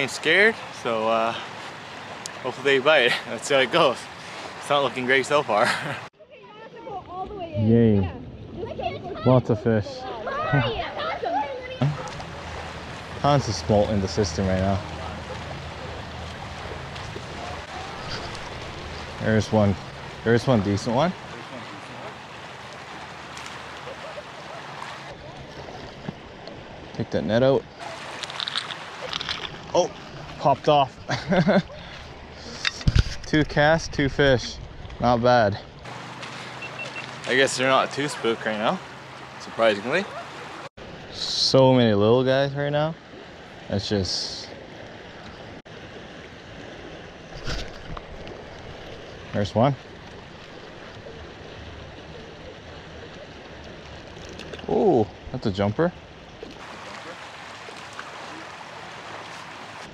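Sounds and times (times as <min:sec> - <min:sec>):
river flowing over gravel: 0:00.0 - 0:06.1, 0:10.3 - 0:31.4, 0:35.8 - 0:41.0, 0:45.7 - 0:59.9.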